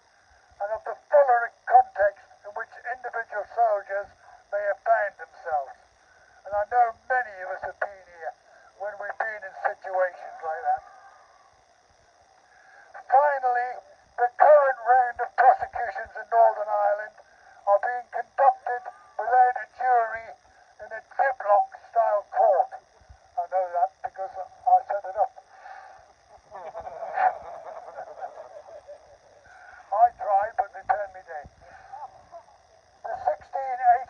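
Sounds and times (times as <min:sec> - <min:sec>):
man speaking through megaphone: 0:00.6 - 0:05.8, 0:06.4 - 0:11.0, 0:12.9 - 0:22.8, 0:23.4 - 0:25.9, 0:29.5 - 0:32.1, 0:33.0 - 0:34.0.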